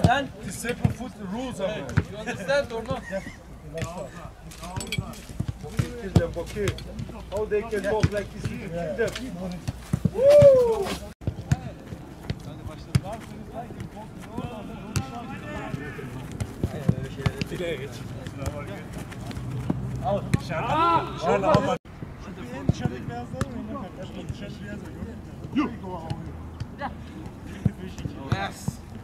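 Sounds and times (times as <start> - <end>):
loud drawn-out shout: 10.1 - 11.0, 20.5 - 21.8
players calling out: 13.7 - 21.8.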